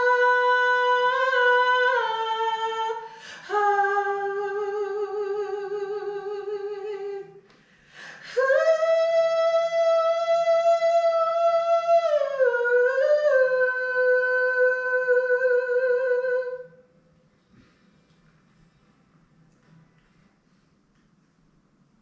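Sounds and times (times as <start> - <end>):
woman singing wordless notes: 0.0 - 7.4, 8.1 - 16.8
singer breathing: 7.5 - 8.3.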